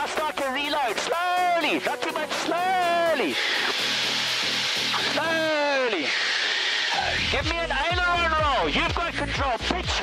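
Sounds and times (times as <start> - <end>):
plane engine and slipstream hiss: 1.6 - 7.0.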